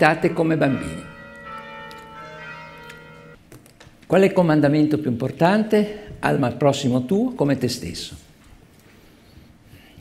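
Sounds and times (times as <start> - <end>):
steady multi-pitch ringing tone: 0.0 - 3.4.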